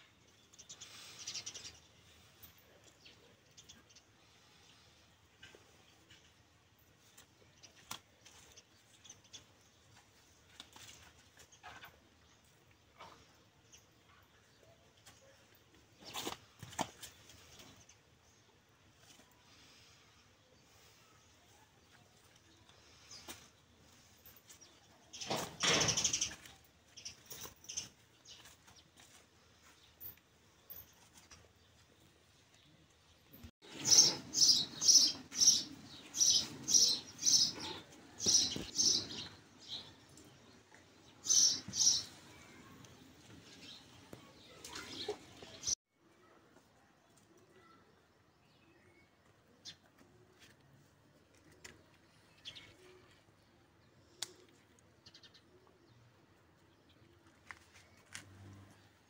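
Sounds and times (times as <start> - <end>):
small bird chirping: 33.3 - 42.9.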